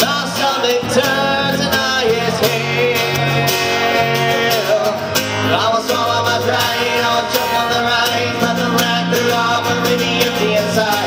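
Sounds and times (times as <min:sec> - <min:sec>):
acoustic guitar strumming: 0:00.0 - 0:11.0
bass notes: 0:00.0 - 0:11.0.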